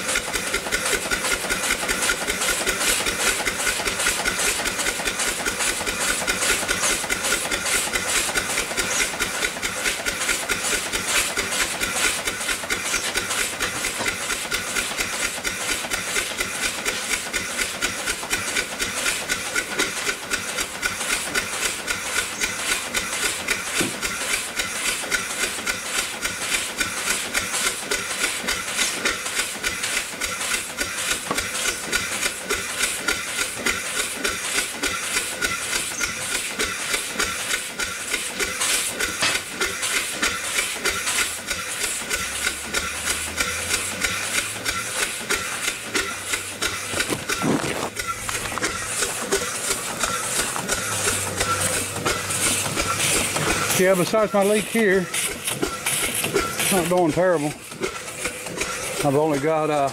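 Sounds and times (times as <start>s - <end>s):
steam engine exhaust beating: 0.0s - 59.9s.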